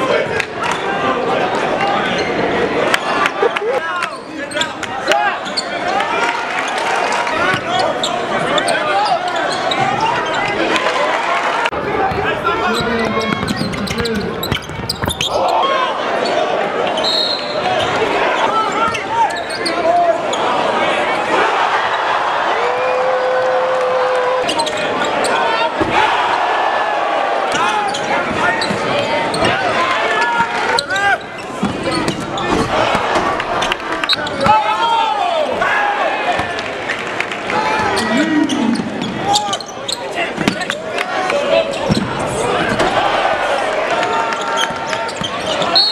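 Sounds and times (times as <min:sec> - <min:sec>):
crowd voices and shouts: 0:00.0 - 0:45.9.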